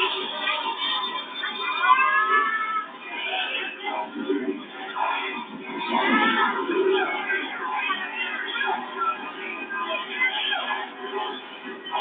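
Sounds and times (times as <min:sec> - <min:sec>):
dance music: 0:03.0 - 0:08.6.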